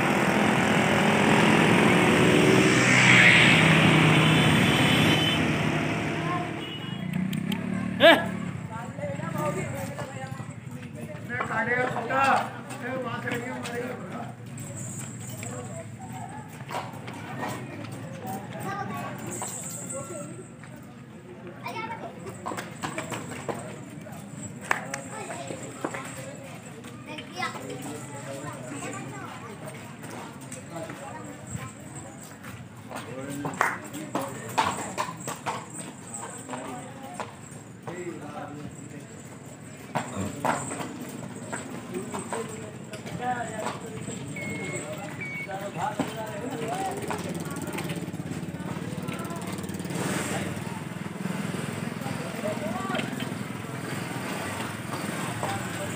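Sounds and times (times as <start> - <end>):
horse hooves clip-clopping: 9.3 - 20.9, 22.1 - 49.7
horse hooves knocking on ground: 22.2 - 24.0, 32.9 - 48.5.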